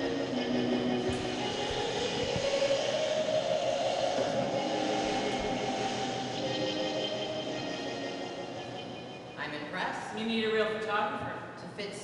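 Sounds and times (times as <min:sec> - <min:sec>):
low thumps: 0:00.9 - 0:06.0.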